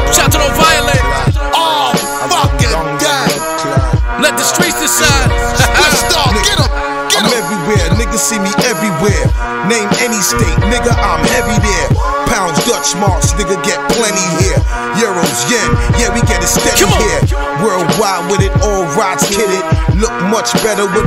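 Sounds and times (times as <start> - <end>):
hip-hop beat with deep bass: 0.0 - 21.0
rapped vocal: 0.0 - 21.0.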